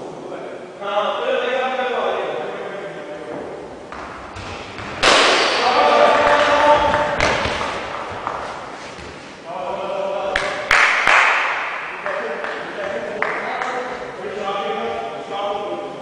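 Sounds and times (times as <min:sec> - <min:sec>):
thuds: 0:03.9 - 0:09.3
players shouting: 0:05.0 - 0:08.5.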